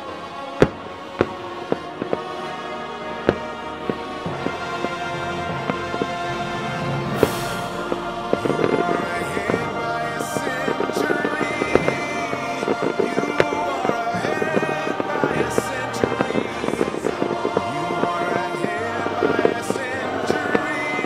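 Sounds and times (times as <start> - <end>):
fireworks crackling: 0.0 - 21.0
music soundtrack: 0.0 - 21.0
fireworks bangs: 0.6 - 21.0.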